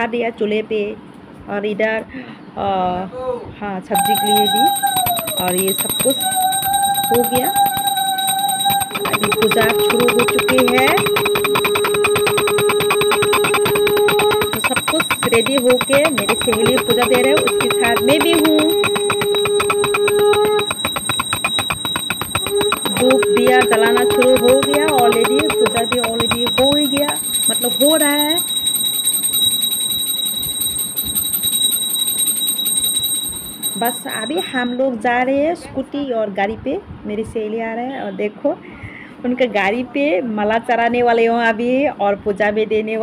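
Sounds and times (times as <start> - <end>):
bell ringing rapidly: 4.0 - 34.8
steady held tone: 4.0 - 34.8.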